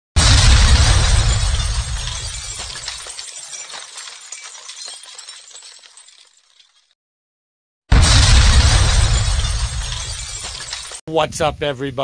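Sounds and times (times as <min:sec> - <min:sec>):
glass shattering with deep boom: 0:00.2 - 0:06.9, 0:07.9 - 0:11.0
tinkling glass debris: 0:00.7 - 0:07.0, 0:08.6 - 0:11.0.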